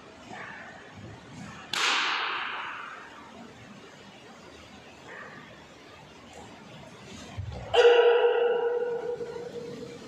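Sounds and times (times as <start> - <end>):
sharp snap of martial arts strike: 1.7 - 2.5.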